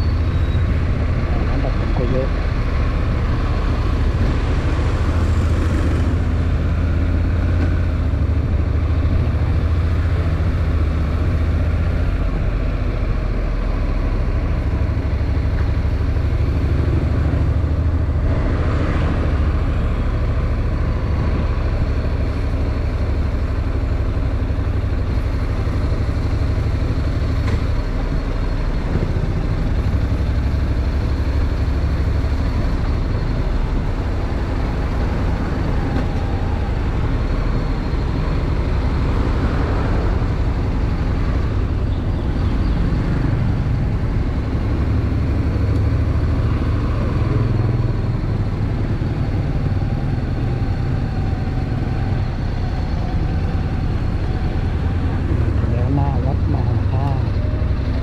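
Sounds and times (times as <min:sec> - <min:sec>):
road and wind noise: 0:00.0 - 0:58.0.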